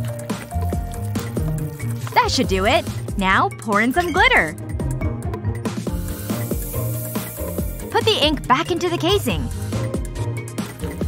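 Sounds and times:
squishy glue drips: 0:00.0 - 0:03.2
background music: 0:00.0 - 0:11.0.

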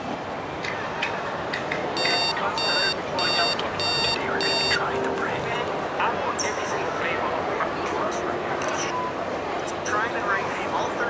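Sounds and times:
chatter of many people: 0:00.4 - 0:11.0
faint beep: 0:02.0 - 0:04.9.

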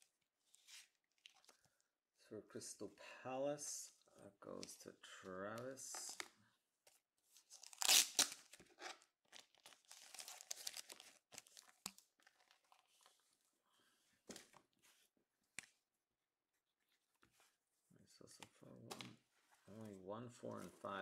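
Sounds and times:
packaging ripping: 0:07.6 - 0:08.6, 0:09.4 - 0:12.5
packaging crinkling: 0:09.3 - 0:12.9.

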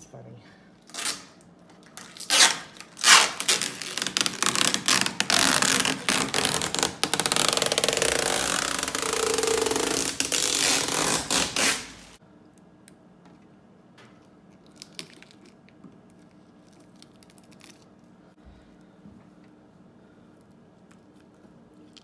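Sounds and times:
plastic film tearing: 0:00.9 - 0:12.2.

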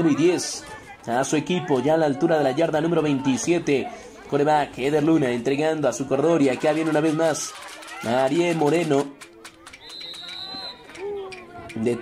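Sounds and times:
referee's whistle: 0:09.7 - 0:11.1.

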